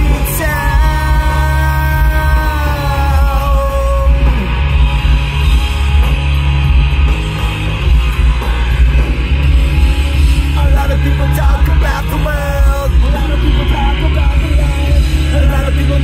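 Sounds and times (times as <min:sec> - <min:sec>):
rock music with electric guitars: 0:00.0 - 0:16.0.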